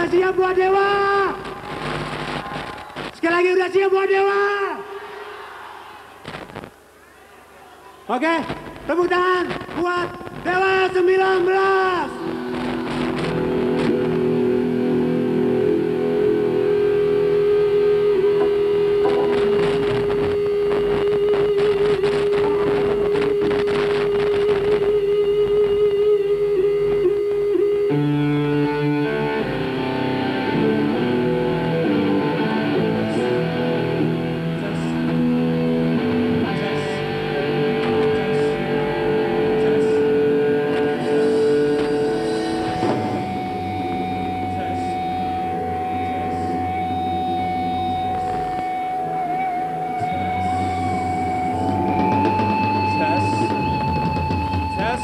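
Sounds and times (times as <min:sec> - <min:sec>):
electric guitar sustained note: 0:11.8 - 0:55.0
rock band playing live: 0:12.1 - 0:55.0.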